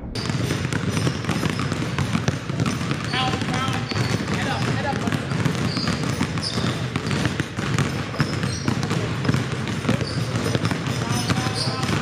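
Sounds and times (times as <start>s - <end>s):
basketballs bouncing on hardwood: 0.2s - 12.0s.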